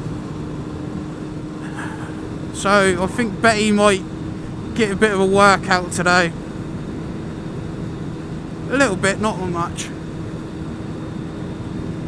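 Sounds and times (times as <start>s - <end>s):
motorcycle engine cruising: 0.0s - 12.0s
steady hum: 0.0s - 12.0s
wind and road noise: 0.0s - 12.0s.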